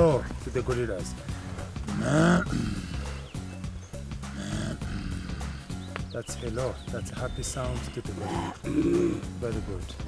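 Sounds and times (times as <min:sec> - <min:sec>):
background music: 0:00.0 - 0:10.0
person grunting: 0:01.9 - 0:03.2, 0:04.4 - 0:05.7, 0:08.2 - 0:09.3.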